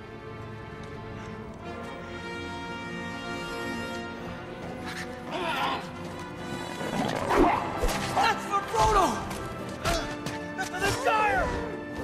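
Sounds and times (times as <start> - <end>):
dramatic orchestral music: 0.0 - 12.0
fighters yelling: 9.9 - 11.8.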